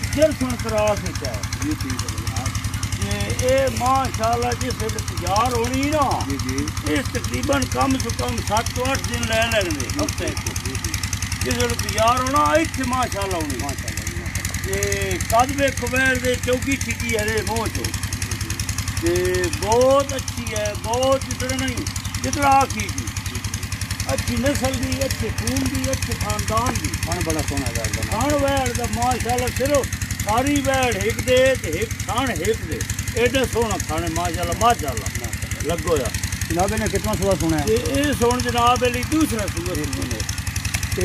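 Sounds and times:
engine knocking: 0.0s - 41.0s
men talking: 0.0s - 41.0s.

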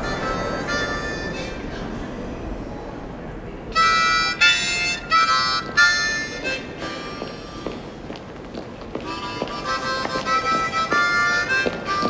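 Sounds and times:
harmonica playing chords: 0.0s - 1.9s, 3.7s - 7.8s, 9.0s - 12.0s.

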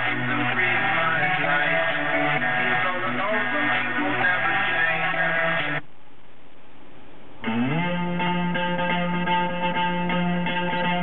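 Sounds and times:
guitar-led rock music: 0.0s - 5.8s, 7.4s - 11.0s
car stereo music: 0.0s - 5.9s, 7.4s - 11.0s.

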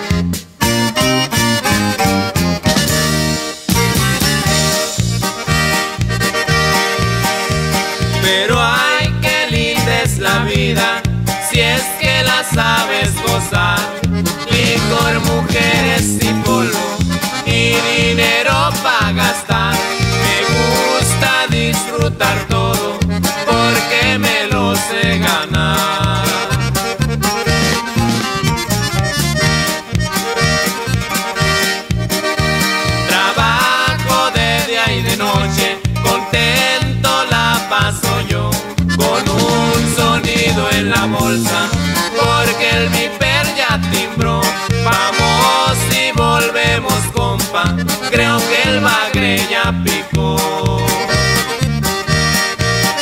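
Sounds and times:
accordion melody: 0.0s - 53.0s
steady bass beat: 0.0s - 53.0s.

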